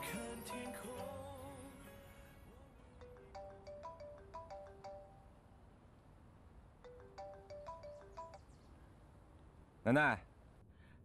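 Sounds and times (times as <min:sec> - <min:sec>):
phone ringtone: 0:00.0 - 0:01.6, 0:03.0 - 0:05.4, 0:06.8 - 0:08.4.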